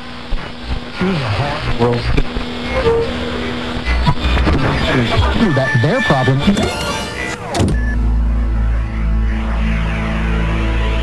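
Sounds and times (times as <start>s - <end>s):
deep synthesized drone: 0.0s - 11.0s.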